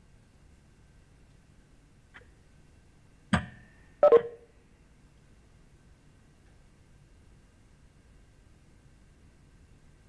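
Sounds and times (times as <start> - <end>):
electronic alert tones: 4.0 - 4.4.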